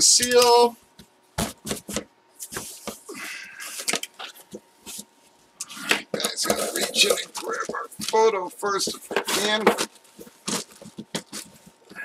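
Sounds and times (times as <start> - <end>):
cardboard lid rustling: 8.8 - 11.8.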